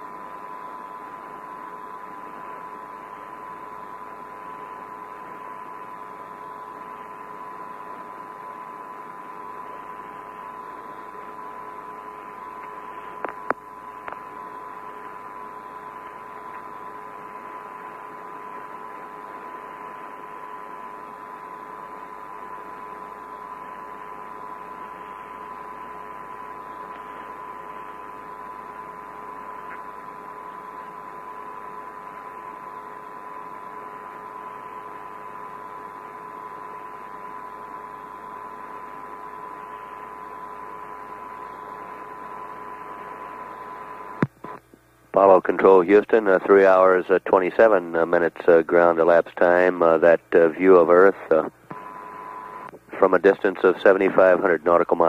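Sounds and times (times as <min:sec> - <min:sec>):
radio link hiss: 0:00.0 - 0:55.0
steady radio tones: 0:00.0 - 0:55.0.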